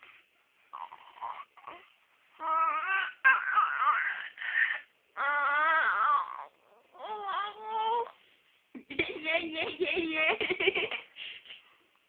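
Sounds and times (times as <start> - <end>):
baby fussing: 0.7 - 8.2.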